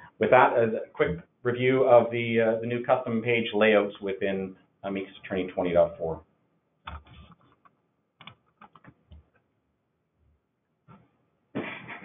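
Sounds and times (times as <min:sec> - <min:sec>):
keyboard keys tapping: 0:08.2 - 0:09.3.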